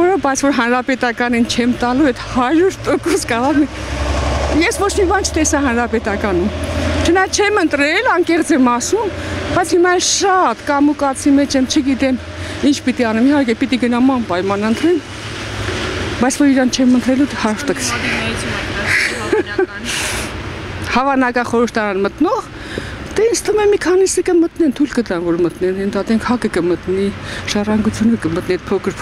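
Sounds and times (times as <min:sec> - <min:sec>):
woman speaking: 0:00.0 - 0:03.9, 0:04.5 - 0:15.0, 0:16.2 - 0:20.1, 0:20.8 - 0:22.5, 0:23.1 - 0:29.0
woman talking: 0:00.0 - 0:15.0, 0:16.2 - 0:20.2, 0:20.8 - 0:22.5, 0:23.1 - 0:29.0
low steady rumble: 0:00.0 - 0:22.4
street traffic noise: 0:00.0 - 0:29.0.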